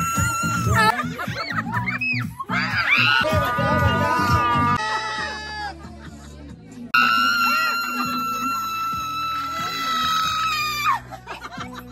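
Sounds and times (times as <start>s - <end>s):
woman screaming: 0.0s - 0.9s, 7.0s - 11.0s
background music: 0.0s - 11.9s.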